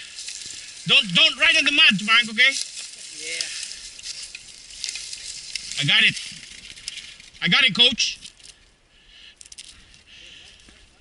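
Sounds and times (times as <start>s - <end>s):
bike tyres rustling dry leaves: 0.0s - 11.0s.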